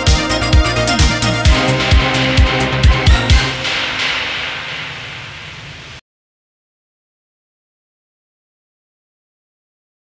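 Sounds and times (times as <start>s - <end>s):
low hum: 1.3s - 6.0s
hissing noise: 1.5s - 6.0s.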